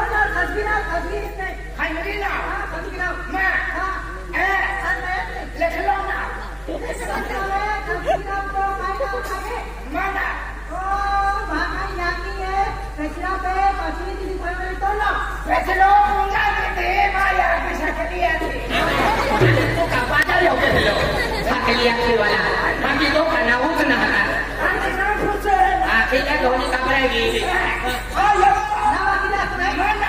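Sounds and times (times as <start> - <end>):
amplified stage dialogue: 0.0 - 30.0
performers talking over pa system: 0.0 - 30.0
steady low hum: 0.0 - 30.0.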